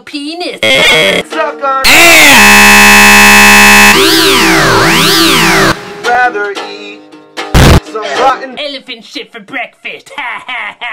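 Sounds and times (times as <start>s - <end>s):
distorted electronic buzz: 0.6s - 1.2s, 1.9s - 5.8s, 7.6s - 7.8s
synthesized tone sweeping in pitch: 1.9s - 5.8s.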